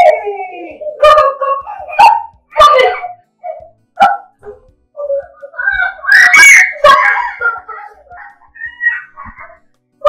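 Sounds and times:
woman shouting angrily: 0.0s - 3.2s, 6.0s - 7.4s.

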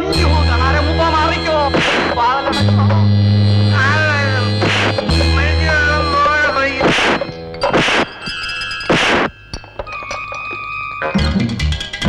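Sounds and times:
held high notes: 0.0s - 11.6s
film soundtrack music: 0.0s - 12.0s
loud crashing hits: 1.7s - 2.9s, 3.9s - 8.1s.

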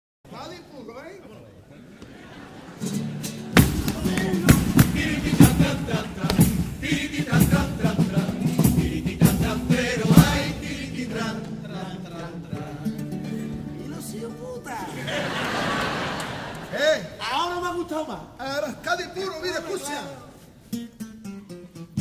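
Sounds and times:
band playing guitars and drums: 2.8s - 11.7s
sharp drum strikes: 3.5s - 10.6s.

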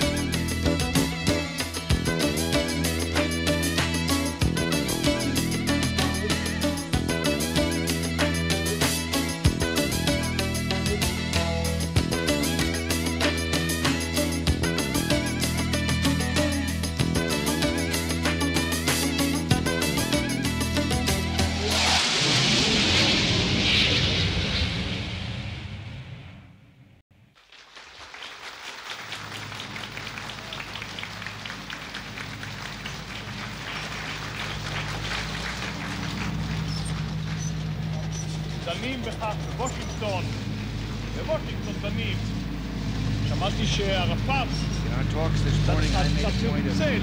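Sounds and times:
song playing: 0.0s - 22.2s
low hum: 20.5s - 27.0s
voices: 29.8s - 42.6s, 43.2s - 47.0s.

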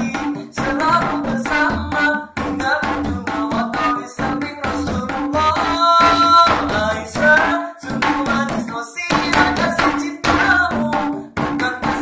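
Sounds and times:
hand-struck percussion: 0.0s - 12.0s
man singing devotional song: 0.0s - 12.0s.

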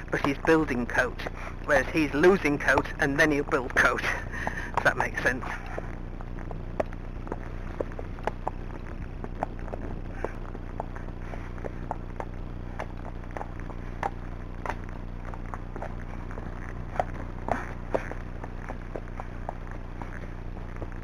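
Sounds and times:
horse hooves clicking: 0.0s - 21.0s
steady low hum: 0.0s - 21.0s.

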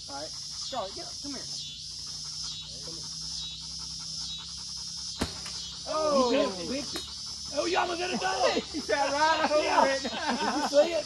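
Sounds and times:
insect chorus drone: 0.0s - 11.0s.

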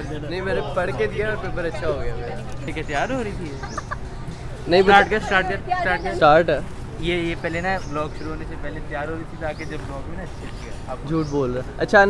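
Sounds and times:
woman laughing: 3.4s - 4.4s.

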